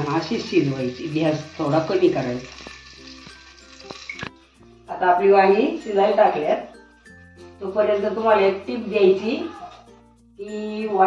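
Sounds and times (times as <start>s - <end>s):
vegetables sizzling in oil: 0.0s - 4.6s.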